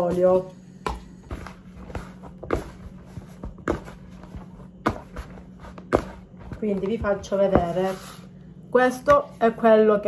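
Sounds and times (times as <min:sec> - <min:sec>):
dough thumps: 0:00.0 - 0:08.0
hands kneading dough: 0:00.0 - 0:10.0.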